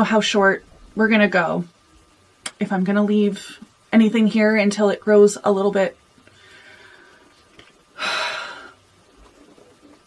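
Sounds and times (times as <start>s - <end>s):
woman breathing in: 6.4s - 7.3s, 8.0s - 8.8s.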